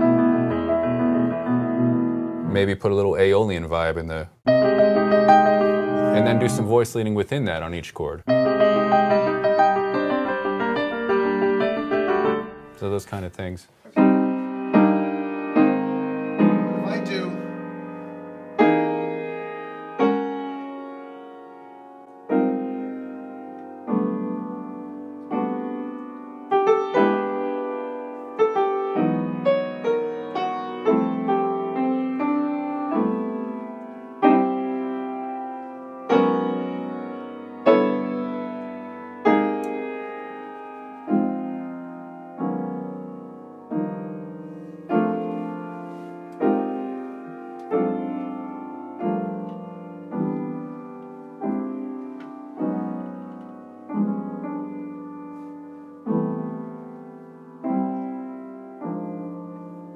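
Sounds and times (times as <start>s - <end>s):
piano chords ringing: 0.0s - 59.9s.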